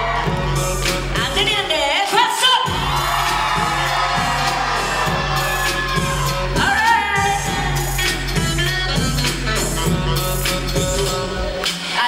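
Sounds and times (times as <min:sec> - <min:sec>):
live pop song with beat: 0:00.0 - 0:12.0.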